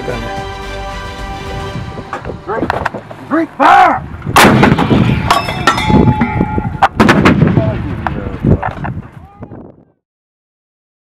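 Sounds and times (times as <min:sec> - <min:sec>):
artillery gun firing: 0:04.4 - 0:05.2, 0:06.8 - 0:07.8
metallic clanks: 0:04.4 - 0:07.2
metallic ringing: 0:04.8 - 0:06.8.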